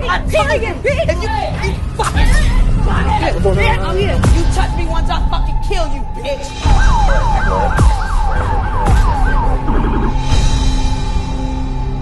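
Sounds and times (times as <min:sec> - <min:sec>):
siren yelping: 0:06.4 - 0:10.4
siren sharp downward swoops: 0:06.6 - 0:10.4.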